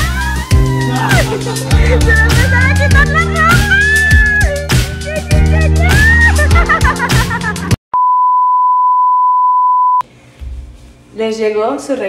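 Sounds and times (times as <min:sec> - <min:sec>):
music with singing: 0:00.0 - 0:07.7
steady beep tone: 0:08.0 - 0:10.0.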